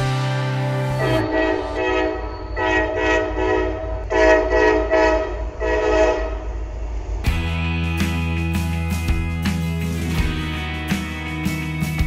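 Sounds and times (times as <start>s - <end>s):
passing train rumble: 0.0s - 11.7s
locomotive air horn blasts: 0.6s - 6.4s.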